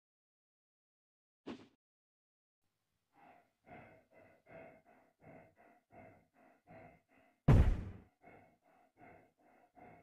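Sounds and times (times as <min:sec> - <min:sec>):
person panting heavily: 0:03.1 - 0:10.0
loud thud: 0:07.5 - 0:08.0.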